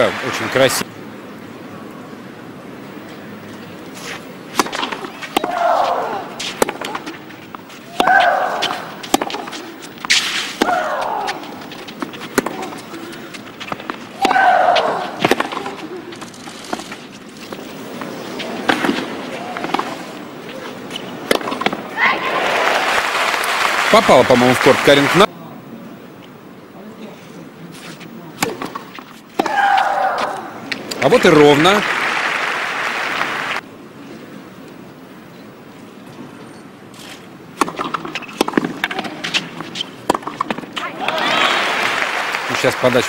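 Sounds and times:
racket striking tennis ball: 4.5 - 16.0, 18.0 - 21.8, 28.4 - 30.9, 37.6 - 40.8.

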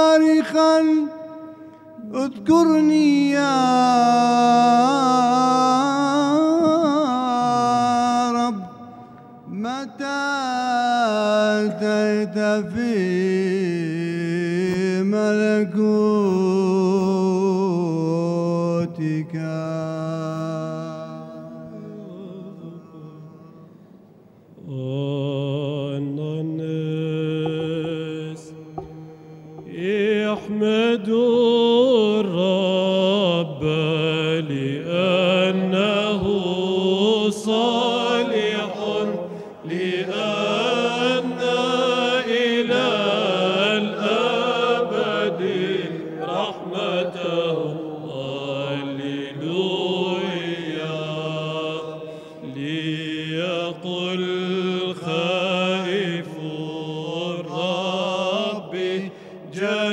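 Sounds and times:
chant melody with vibrato: 0.0 - 59.9
held low drone note: 27.4 - 30.6.

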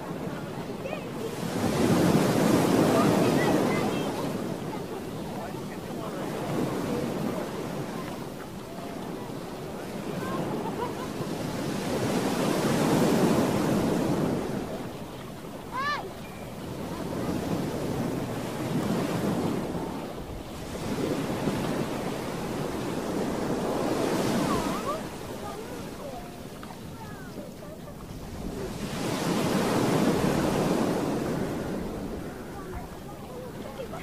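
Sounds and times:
waves washing on beach: 0.0 - 34.0.

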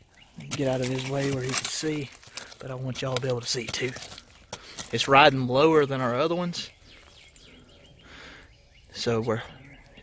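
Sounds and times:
dirt rustling by hand: 0.0 - 7.2
faint bird chirps: 6.5 - 10.0.

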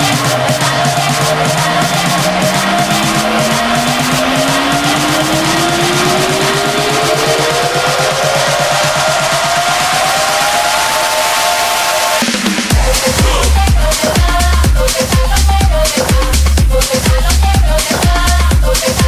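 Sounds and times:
rising synth sweep: 0.0 - 14.2
fast electronic drum beat: 0.0 - 19.0.

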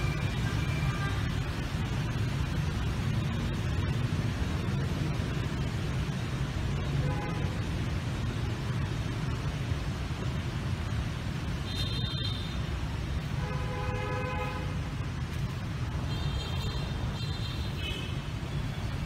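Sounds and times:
city traffic rumble: 0.0 - 19.0.

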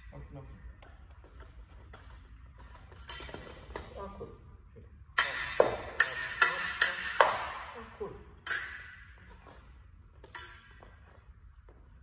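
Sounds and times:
fencing blades clashing: 0.0 - 12.0.

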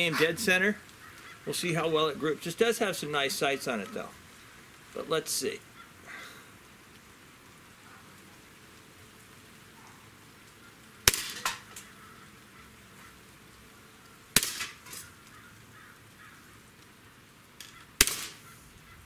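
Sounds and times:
air pistol shot crack: 11.1 - 11.8, 14.4 - 15.0, 18.0 - 18.4.

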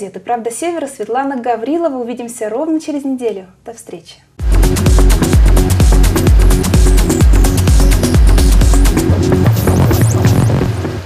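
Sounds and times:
electronic music with heavy bass: 4.4 - 11.0.

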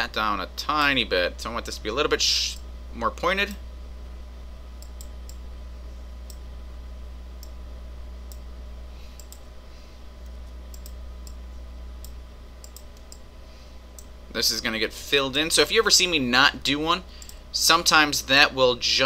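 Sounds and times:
low electrical hum: 0.0 - 19.0
computer mouse clicking: 4.8 - 5.4, 9.2 - 9.5, 10.2 - 11.4, 12.0 - 13.2.

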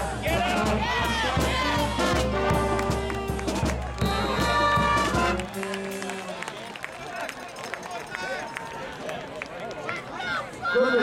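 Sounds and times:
band music with brass horns: 0.0 - 6.7
crowd chatter: 0.0 - 11.0.

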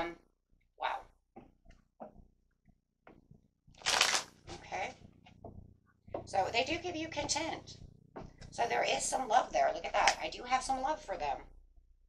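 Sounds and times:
cards being shuffled: 3.8 - 4.4.

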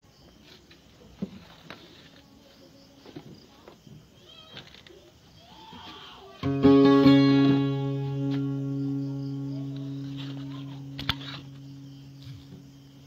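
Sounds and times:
faint knocks and handling noise: 0.3 - 5.1
guitar chord ringing: 6.4 - 13.0.

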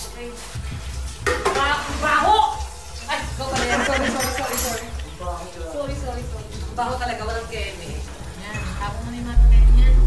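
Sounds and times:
tap water running into metal pot: 0.8 - 6.9.

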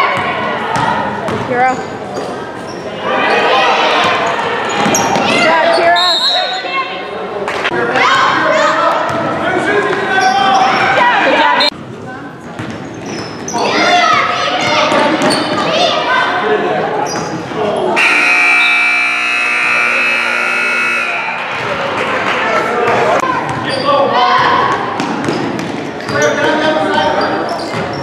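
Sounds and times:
voices in a gym: 0.0 - 28.0
scoreboard buzzer: 18.0 - 21.6.

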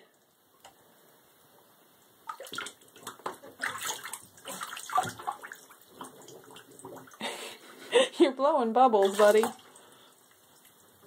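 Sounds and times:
otter splashing in water: 2.2 - 7.2, 9.0 - 9.8.

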